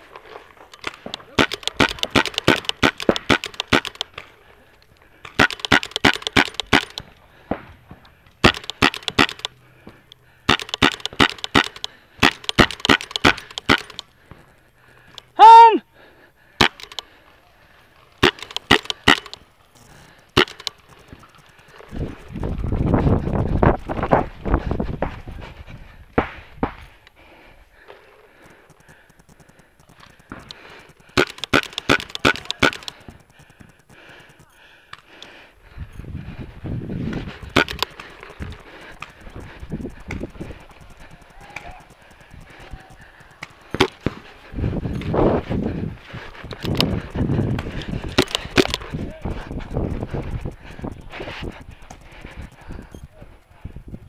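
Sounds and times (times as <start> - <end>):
paintball markers firing pops: 0.7 - 15.4, 16.5 - 17.2, 18.1 - 23.0, 27.8 - 35.4, 37.0 - 53.2
voices: 27.8 - 54.0.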